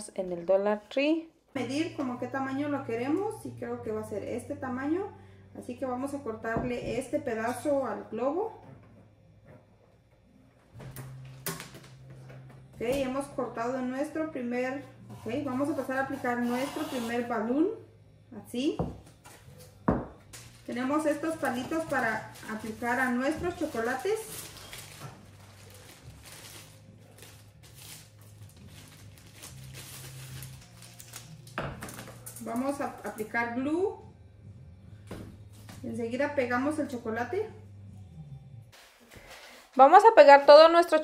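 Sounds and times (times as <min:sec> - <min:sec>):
low steady hum: 0:17.4 - 0:38.8.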